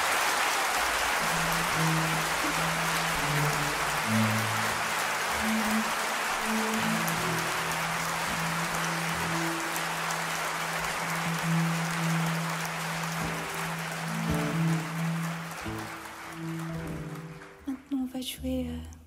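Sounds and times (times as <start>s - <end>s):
audience applauding: 0.0s - 18.1s
low sustained instrument notes: 1.0s - 18.9s.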